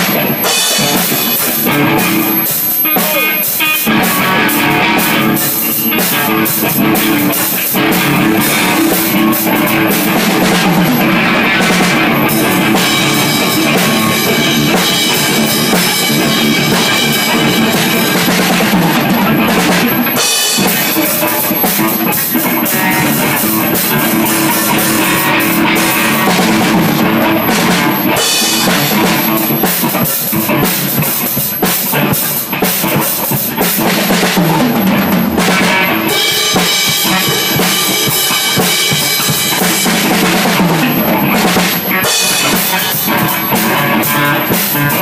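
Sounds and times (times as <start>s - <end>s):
drum kit with bass drum: 0.0s - 45.0s
electric guitars: 0.0s - 45.0s.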